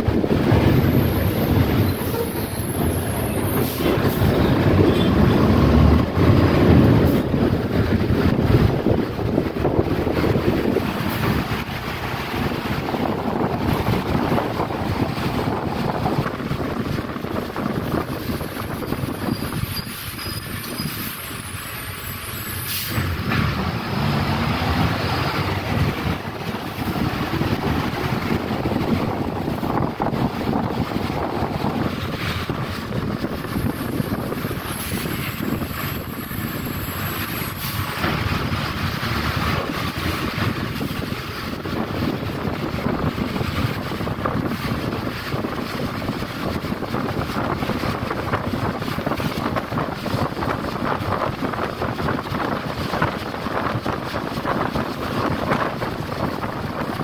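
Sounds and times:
bus engine: 0.0 - 57.0
tyre noise on wet pavement: 0.0 - 57.0.

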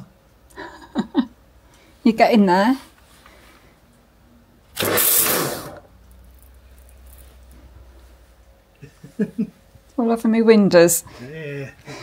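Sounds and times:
pressure washer spray: 4.8 - 5.8.

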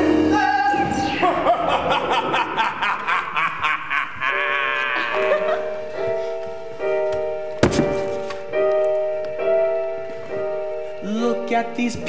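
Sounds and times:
man cackling: 1.0 - 5.8.

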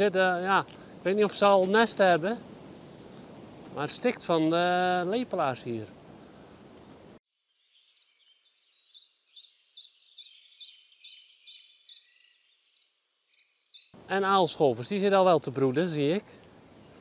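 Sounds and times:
steady outdoor hiss: 0.0 - 17.0.

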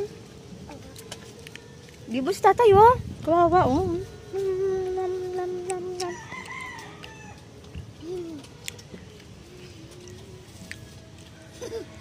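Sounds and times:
rooster crowing: 6.1 - 7.4.

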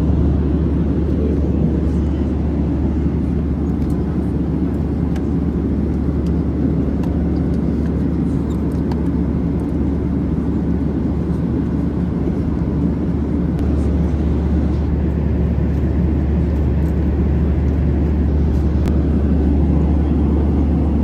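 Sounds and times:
airplane cabin rumble: 0.0 - 21.0.

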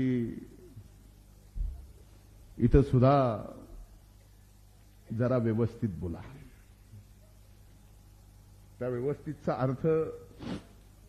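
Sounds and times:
man speaking into a microphone: 2.6 - 3.7, 8.8 - 10.2.

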